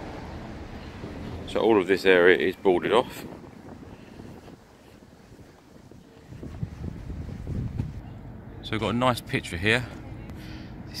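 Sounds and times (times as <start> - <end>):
wind rumbling on microphone: 0.0 - 8.1.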